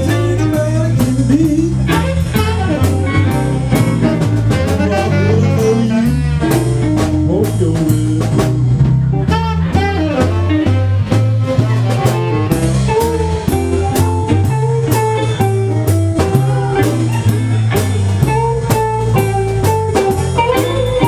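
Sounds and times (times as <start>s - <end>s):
drum kit beat with cymbals: 0.0s - 21.0s
electric guitar lead: 0.0s - 21.0s
walking bass line: 0.0s - 21.0s.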